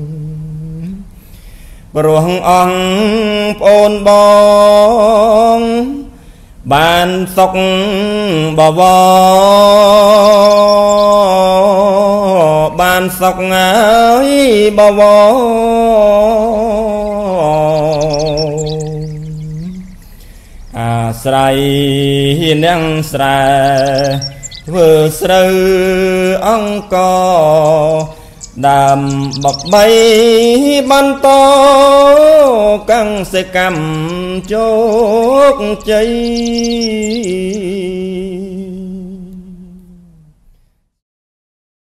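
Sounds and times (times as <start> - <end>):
man chanting a long hummed tone: 0.0 - 1.1, 1.9 - 20.1, 20.7 - 40.4
man chanting solo: 20.8 - 39.4.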